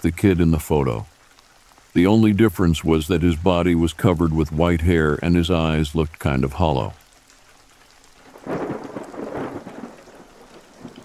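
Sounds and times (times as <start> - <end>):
steady rain: 0.0 - 11.0
thunder rolling: 8.3 - 11.0.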